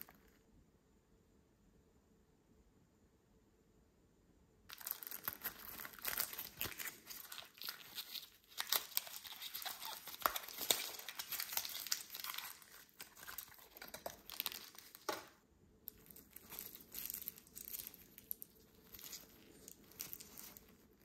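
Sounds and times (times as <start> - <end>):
cellophane and paper crinkling: 4.7 - 15.3, 15.9 - 21.0.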